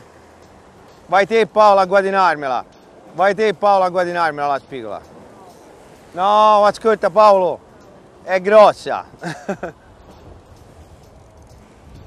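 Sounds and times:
sea surf breaking on rocks: 0.0 - 12.0.

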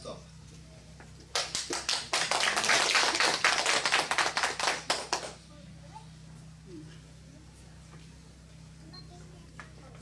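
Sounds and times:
audience clapping: 1.3 - 5.4.

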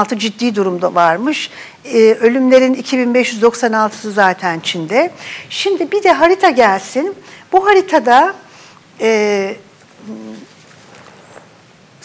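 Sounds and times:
paper sheets handled: 9.8 - 11.6.

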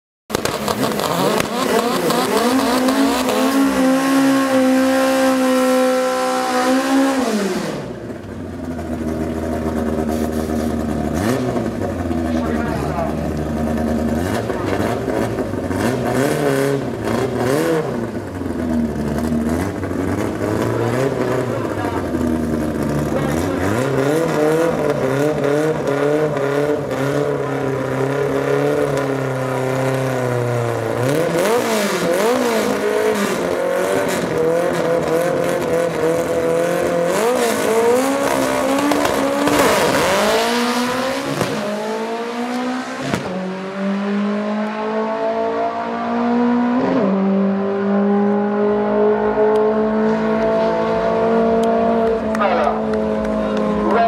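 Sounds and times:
engines revving up: 0.3 - 54.0
race car engines idling: 7.8 - 41.4, 51.6 - 54.0
engine throttle blips: 49.2 - 54.0.

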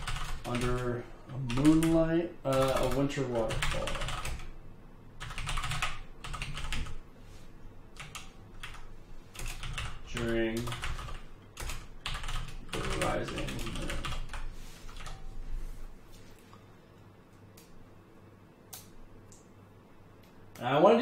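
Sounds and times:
typing on computer keyboard: 0.0 - 4.5, 5.2 - 7.0, 8.0 - 15.2.

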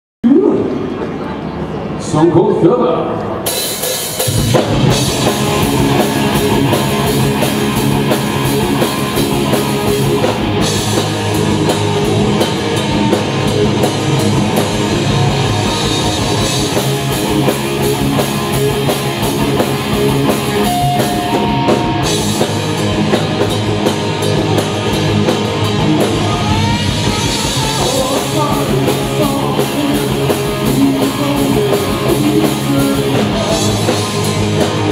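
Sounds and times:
electric guitars: 3.1 - 34.9
bass guitar: 3.3 - 34.9
drum kit: 3.4 - 34.9.

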